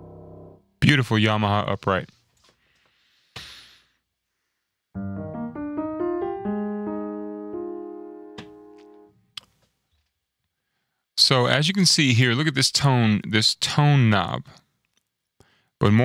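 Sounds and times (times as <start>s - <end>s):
muted piano arpeggio: 5.0s - 9.1s.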